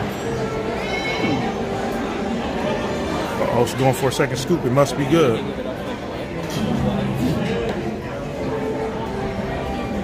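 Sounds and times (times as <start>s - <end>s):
restaurant dining room din: 0.0s - 10.0s.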